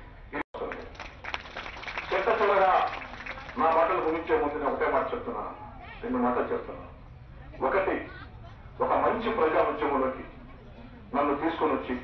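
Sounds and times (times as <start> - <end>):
man speaking into microphone: 2.1 - 3.0, 3.6 - 7.0, 8.8 - 10.4, 11.1 - 12.0.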